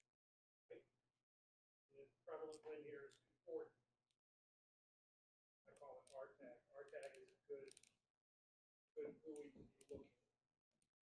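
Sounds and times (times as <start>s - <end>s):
faint distant voice speaking: 2.0s - 3.7s, 5.7s - 7.7s, 9.0s - 10.1s.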